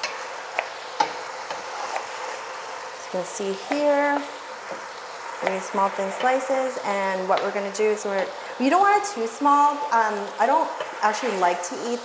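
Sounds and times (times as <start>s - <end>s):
chicken sizzling in a pot: 0.0s - 12.0s.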